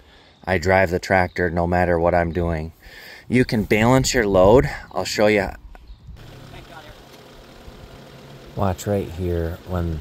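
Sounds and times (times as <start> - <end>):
tractor diesel engine idling: 6.2 - 10.0.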